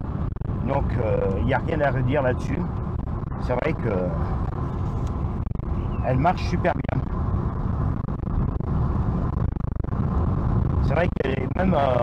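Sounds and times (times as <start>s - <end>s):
car cabin engine and road rumble: 0.0s - 12.0s.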